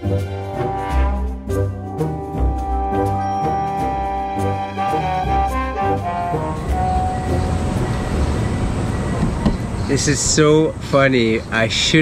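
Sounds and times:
music with brass: 0.0s - 8.5s
steady rumbling noise: 5.5s - 12.0s.

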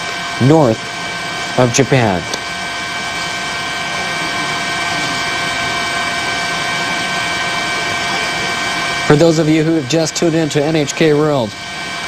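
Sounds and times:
helicopter turbine and rotors: 0.0s - 12.0s.

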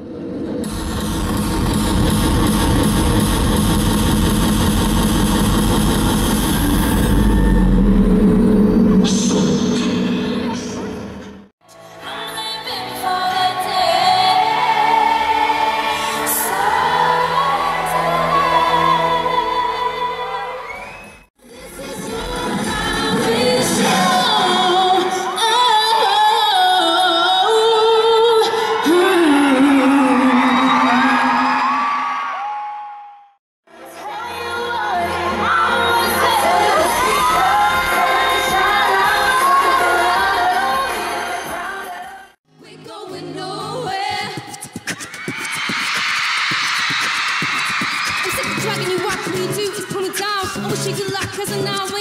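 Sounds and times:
live arena concert wash: 0.0s - 52.0s
woman singing into a microphone: 11.7s - 15.2s, 21.4s - 31.4s, 33.8s - 44.7s, 48.2s - 52.0s.

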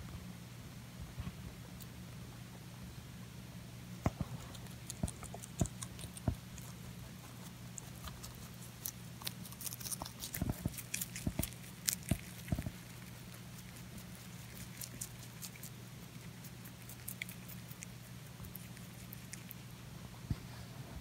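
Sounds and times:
rabbit chewing crisp vegetable: 0.8s - 21.0s.

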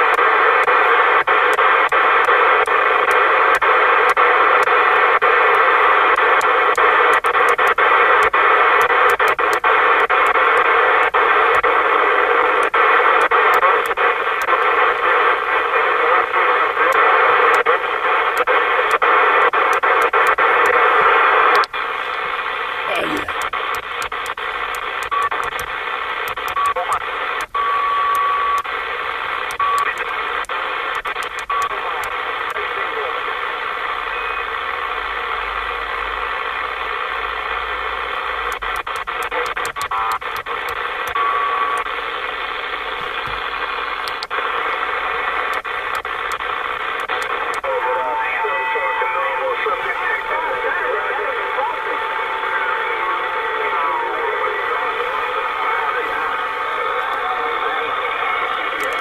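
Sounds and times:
radio clicks: 0.0s - 48.1s, 48.8s - 59.0s
radio static hiss: 0.0s - 59.0s.

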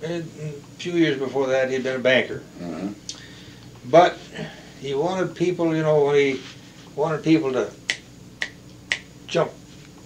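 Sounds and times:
finger snaps: 7.9s - 9.1s.

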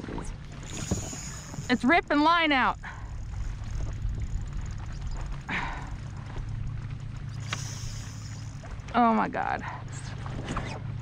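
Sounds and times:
choppy water around kayak: 0.0s - 11.0s
wind rumble: 0.6s - 7.4s.

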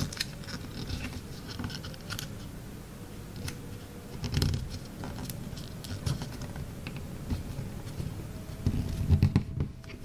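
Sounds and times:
paper rustling and crinkling: 0.0s - 2.5s, 3.4s - 10.0s.

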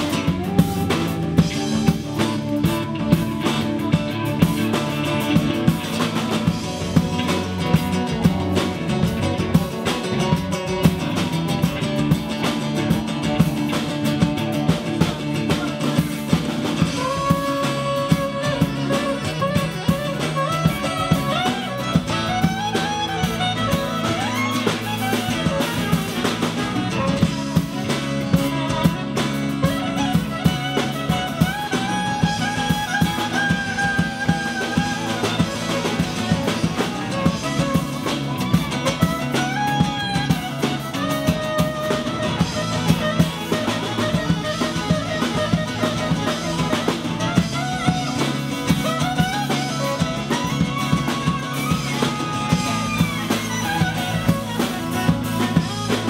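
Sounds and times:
drum kit beat: 0.0s - 56.0s
electric bass: 0.0s - 56.0s
strummed acoustic guitar: 0.0s - 56.0s.

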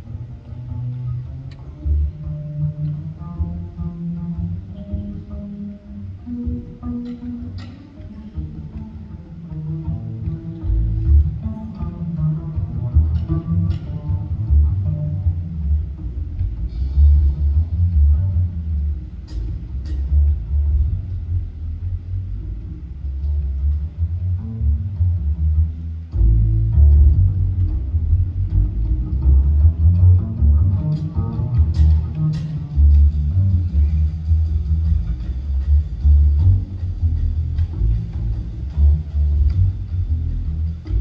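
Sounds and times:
plucked upright double bass: 0.0s - 41.0s.

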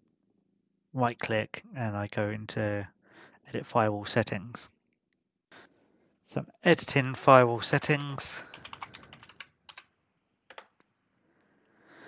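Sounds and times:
computer keyboard key clicks: 8.5s - 9.9s, 10.5s - 10.8s.

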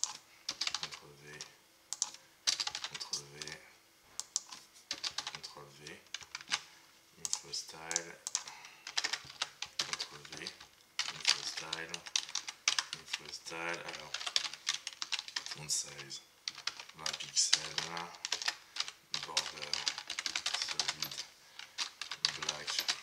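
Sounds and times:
computer keyboard typing: 0.0s - 3.6s, 4.2s - 23.0s.

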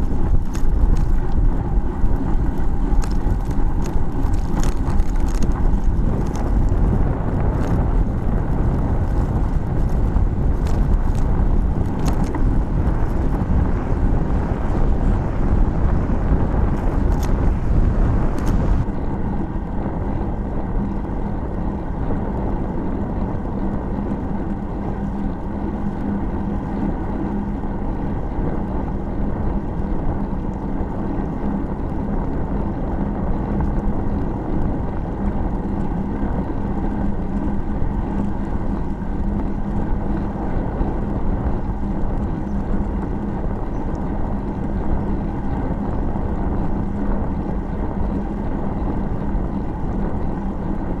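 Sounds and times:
low hum: 0.0s - 51.0s
wind rumble on microphone: 0.0s - 51.0s.

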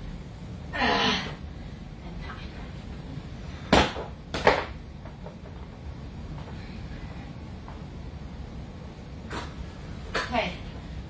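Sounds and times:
person groaning with effort: 0.7s - 1.4s.

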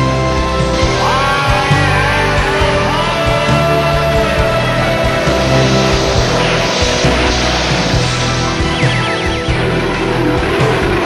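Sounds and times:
rock music: 0.0s - 11.0s
rushing aircraft engine effect: 0.0s - 11.0s.

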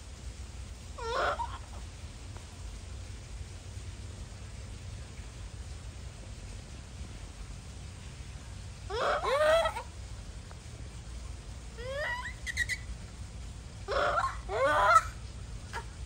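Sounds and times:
monkeys calling: 1.0s - 1.8s, 8.9s - 10.0s, 11.8s - 13.0s, 13.8s - 16.0s.

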